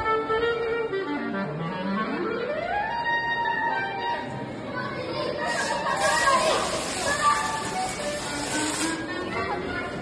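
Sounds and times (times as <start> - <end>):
fire extinguisher hissing: 5.5 - 9.0.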